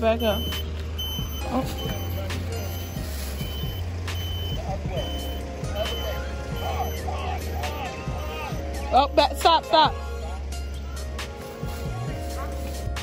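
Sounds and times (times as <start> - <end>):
reverse warning beeper: 0.0 - 8.9.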